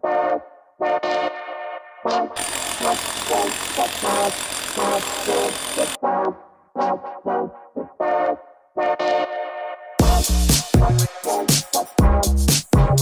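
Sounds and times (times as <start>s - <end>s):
brass and synth background music: 0.0s - 2.4s, 6.0s - 13.0s
rotary hammer chiselling concrete: 2.4s - 6.0s.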